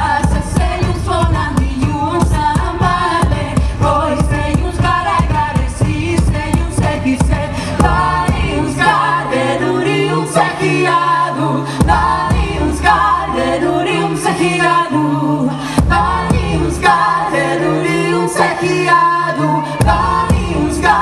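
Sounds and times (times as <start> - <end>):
drum strikes: 0.0 - 9.1, 11.8 - 13.1, 15.8 - 17.1, 19.8 - 21.0
woman singing lead: 0.0 - 21.0.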